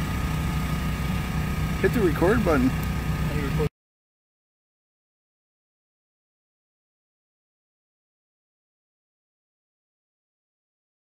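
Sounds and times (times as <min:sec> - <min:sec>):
engine humming: 0:00.0 - 0:03.7.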